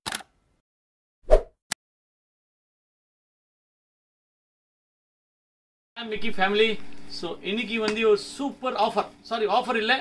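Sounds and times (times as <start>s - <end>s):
swish: 1.3s - 1.5s.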